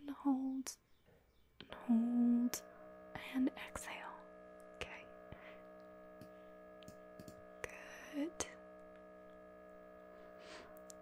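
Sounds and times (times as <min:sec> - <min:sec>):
mri scanner hum: 0:01.6 - 0:11.0
person whispering: 0:04.8 - 0:05.1.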